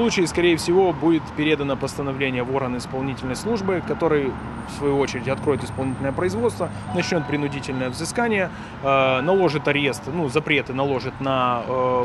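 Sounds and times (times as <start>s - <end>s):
faint street traffic: 0.0s - 12.0s
man speaking: 5.0s - 12.0s.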